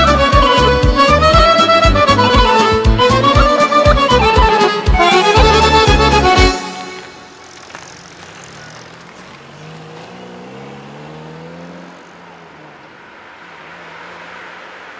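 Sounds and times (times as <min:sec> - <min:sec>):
accordion instrumental music: 0:00.0 - 0:08.5
car engine running: 0:00.0 - 0:14.0
road noise: 0:00.0 - 0:14.9.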